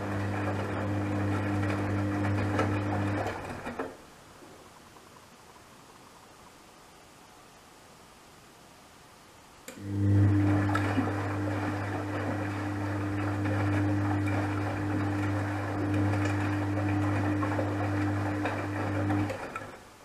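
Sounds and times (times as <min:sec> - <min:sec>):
wet laundry sloshing in drum: 0:00.0 - 0:04.0, 0:10.3 - 0:19.9
washing machine motor humming: 0:00.0 - 0:04.2, 0:09.7 - 0:20.0.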